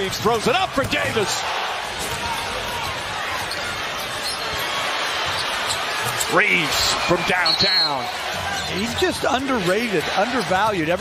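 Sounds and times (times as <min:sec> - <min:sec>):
crowd din: 0:00.0 - 0:11.0.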